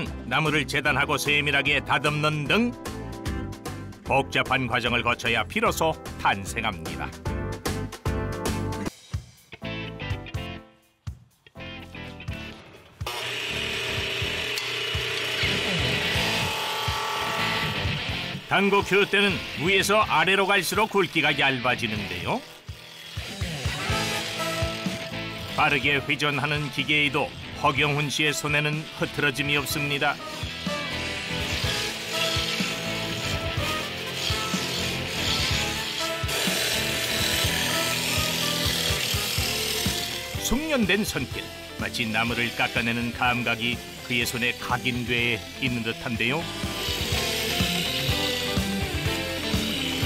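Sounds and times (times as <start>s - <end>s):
wood lathe spinning: 13.0s - 50.0s
tool scraping turning wood: 27.9s - 44.9s, 46.5s - 50.0s
chisel scraping wood: 30.3s - 40.4s.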